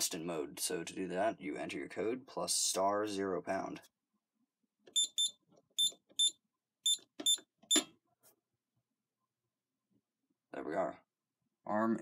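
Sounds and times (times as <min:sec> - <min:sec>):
alarm keypad beeps: 0:04.9 - 0:07.9.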